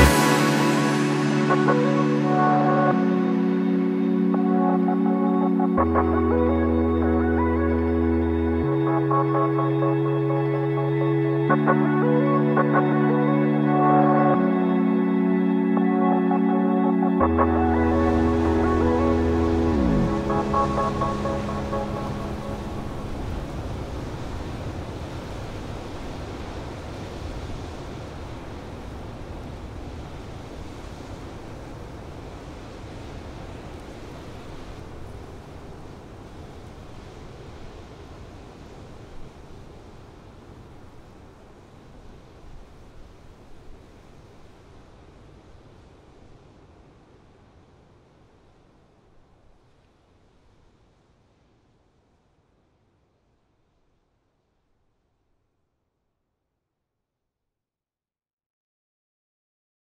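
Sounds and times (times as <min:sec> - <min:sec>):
sea waves on shore: 0:00.0 - 0:13.6, 0:17.2 - 0:48.8
music chord sliding down: 0:00.0 - 0:23.8.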